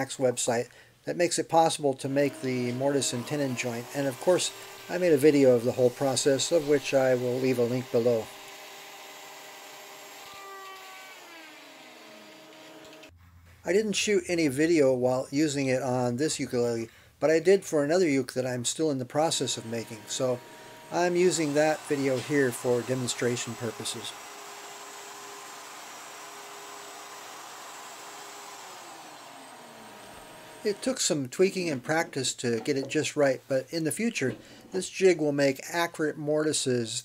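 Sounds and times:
router motor whirring: 2.3s - 13.1s, 19.4s - 30.9s.

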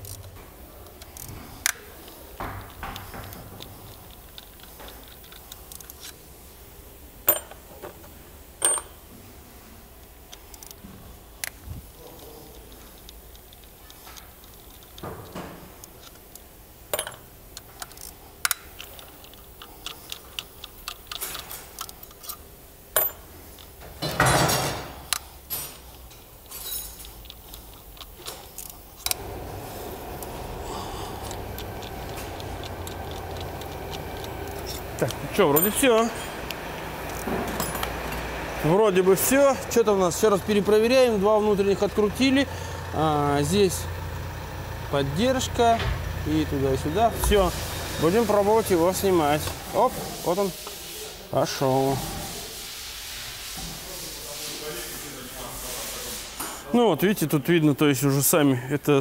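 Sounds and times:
steady background hum: 0.0s - 59.0s
metal tools clinking: 7.3s - 8.0s, 8.6s - 9.0s, 16.9s - 17.3s, 23.0s - 23.3s, 25.5s - 29.3s, 30.7s - 36.5s, 37.1s - 38.3s
socket ratchet clicking: 17.0s - 22.4s, 31.2s - 37.9s.

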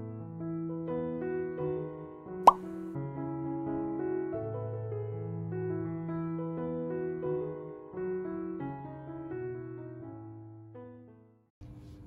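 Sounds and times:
soft keyboard music: 0.0s - 11.4s.

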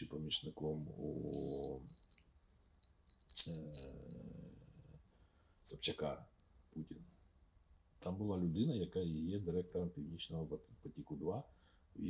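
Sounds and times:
man's drawn-out hesitation sounds: 0.0s - 1.9s.

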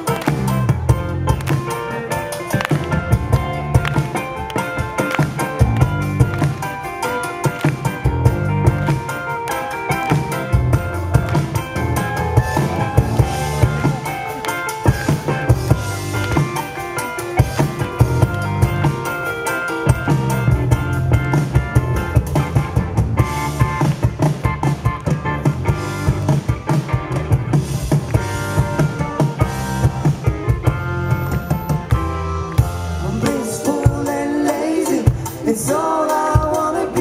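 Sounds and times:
electric bass: 0.0s - 9.3s, 9.9s - 35.4s
drum kit beating: 0.0s - 37.0s
electric guitar: 0.0s - 37.0s
keyboard: 0.0s - 37.0s.

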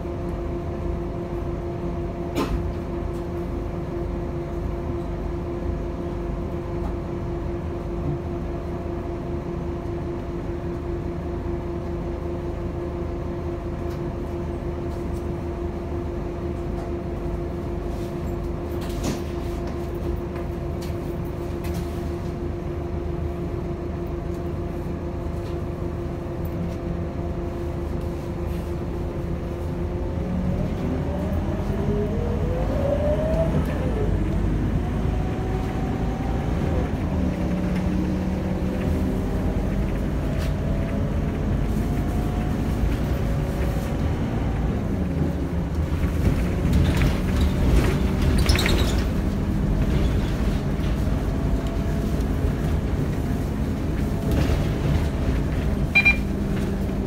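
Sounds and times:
bus engine rumble: 0.0s - 57.0s.

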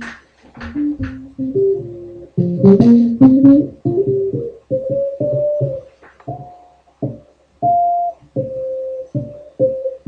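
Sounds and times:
dull plucked guitar riff: 0.0s - 10.0s.

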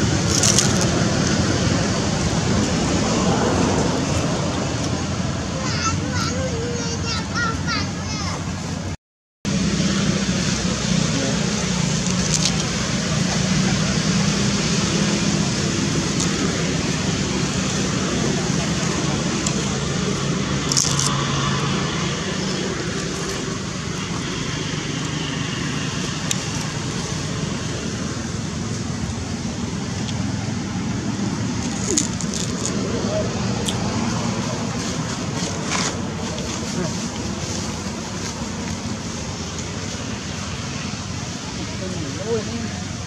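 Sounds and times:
road traffic: 0.0s - 43.0s.

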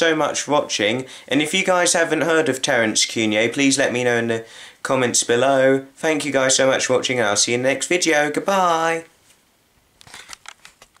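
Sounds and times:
device handling clicks and rustles: 10.0s - 11.0s.

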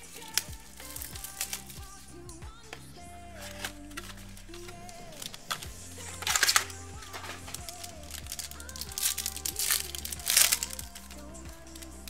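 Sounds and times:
foil wrapper crinkling: 3.4s - 11.9s.

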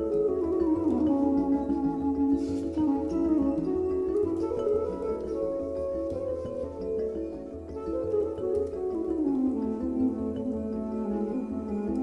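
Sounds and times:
instrumental background music: 0.0s - 12.0s.

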